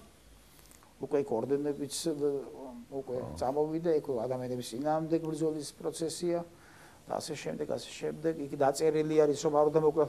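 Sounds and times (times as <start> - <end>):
man talking in a low voice: 1.0 - 6.5, 7.1 - 10.0.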